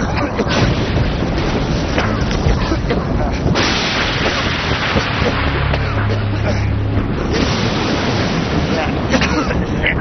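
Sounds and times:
debris pelting a roof: 0.0 - 6.6.

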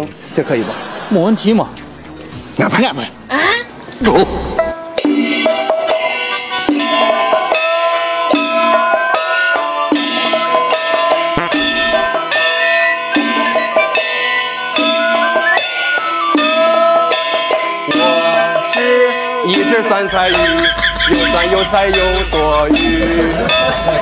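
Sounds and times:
traditional ensemble playing lively tune: 0.1 - 3.2, 4.8 - 24.0
ringing percussion strikes: 4.6 - 24.0.

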